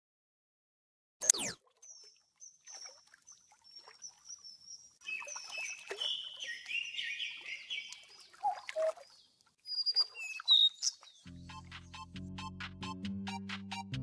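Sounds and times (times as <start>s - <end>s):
birds chirping and calling: 1.8s - 11.3s
music with steady beat: 11.3s - 14.0s.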